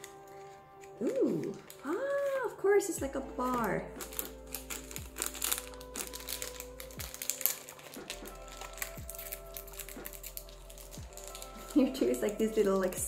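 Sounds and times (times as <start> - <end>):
foil wrapper crinkling: 0.0 - 2.8, 3.4 - 13.0
soft background music: 0.0 - 13.0.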